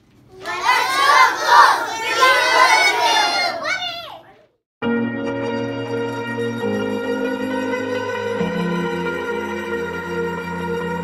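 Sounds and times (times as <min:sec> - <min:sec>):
children shouting a cheer: 0:00.3 - 0:04.3.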